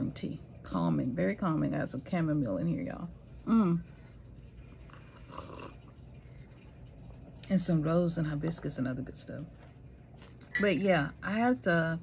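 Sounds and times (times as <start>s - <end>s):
person sipping tea: 4.7s - 6.2s.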